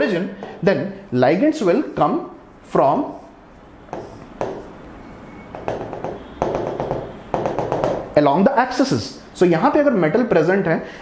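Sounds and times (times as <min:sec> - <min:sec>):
pen tapping on board: 0:03.9 - 0:04.7, 0:05.5 - 0:08.2.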